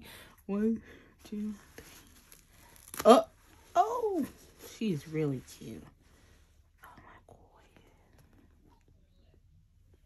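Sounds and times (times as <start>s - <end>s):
soft breathy whisper: 4.3s - 10.0s.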